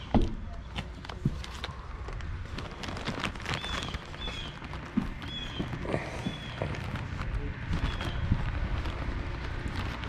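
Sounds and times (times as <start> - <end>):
footsteps on a porch: 0.0 - 10.0.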